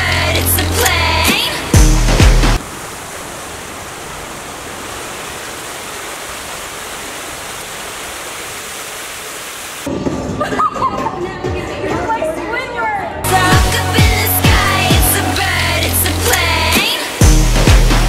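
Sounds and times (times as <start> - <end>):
bass-heavy song beat: 0.0 - 2.6, 13.2 - 18.0
steady hiss: 2.6 - 9.9.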